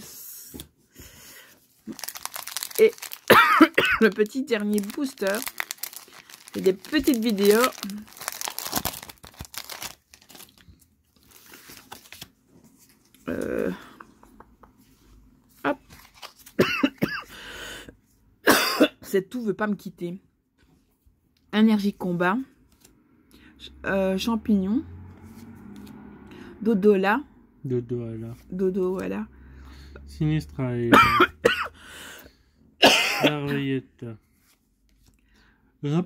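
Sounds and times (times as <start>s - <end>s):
plastic wrapper crinkling: 1.8s - 13.2s, 15.9s - 16.6s
woman coughing: 3.3s - 4.2s, 16.6s - 17.3s, 18.4s - 19.2s, 30.9s - 31.8s, 32.8s - 33.6s.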